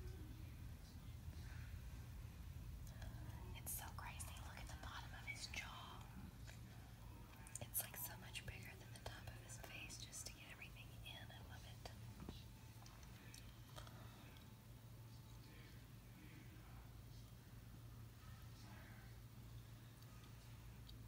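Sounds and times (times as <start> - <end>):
faint whispered speech: 0.0 - 21.0
steady low hum: 0.0 - 21.0.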